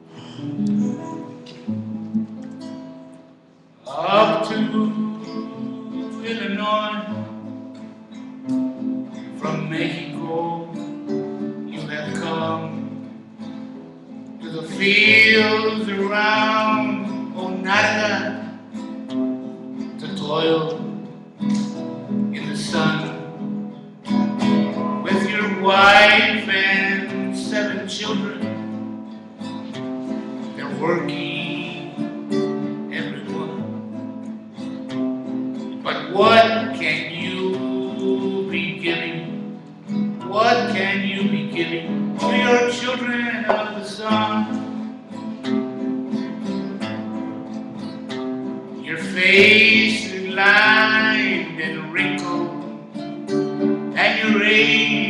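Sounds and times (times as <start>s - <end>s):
strummed acoustic guitar: 0.0s - 55.0s
man singing a slow song: 3.8s - 7.4s, 9.3s - 13.1s, 14.4s - 18.6s, 19.9s - 23.5s, 24.6s - 28.7s, 30.4s - 33.8s, 35.8s - 44.8s, 48.8s - 52.9s, 53.9s - 55.0s.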